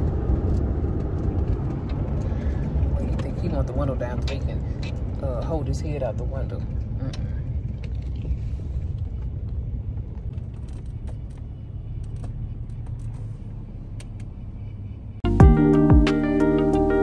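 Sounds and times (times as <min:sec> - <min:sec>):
car cabin rumble: 0:00.0 - 0:17.0.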